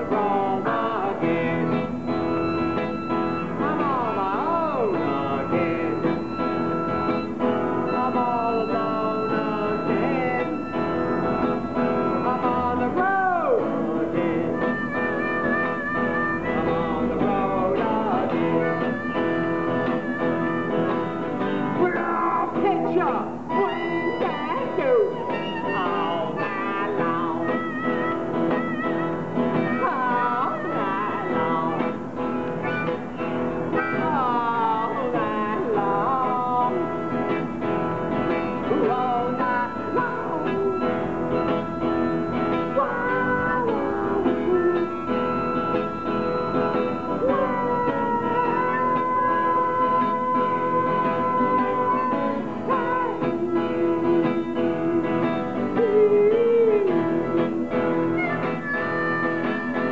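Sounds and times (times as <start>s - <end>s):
blues harmonica: 0.0s - 59.9s
strummed acoustic guitar: 0.0s - 59.9s.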